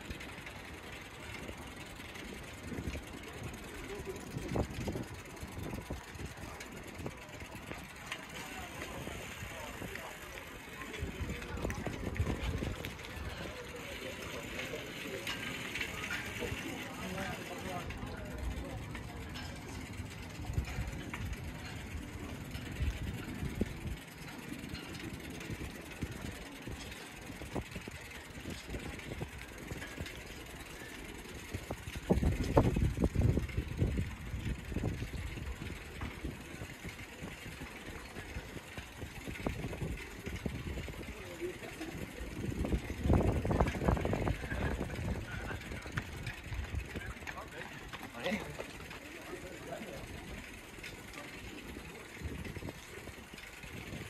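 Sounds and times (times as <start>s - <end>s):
low rumble while cycling: 0.0s - 54.0s.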